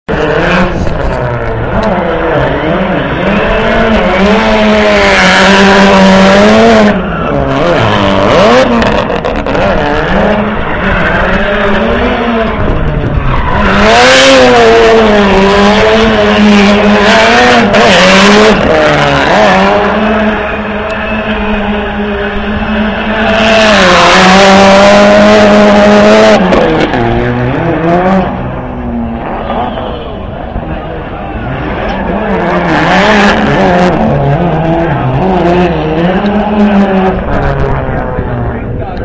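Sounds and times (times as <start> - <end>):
tires squealing and skidding: 0.1 - 38.6
car engine revving: 0.1 - 39.0.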